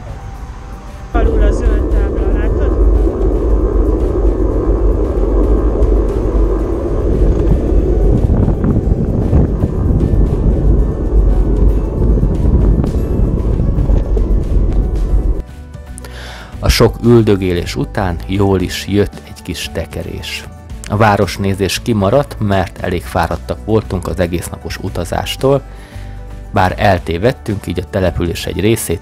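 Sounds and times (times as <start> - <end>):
wind rushing over microphone: 0.0 - 15.6.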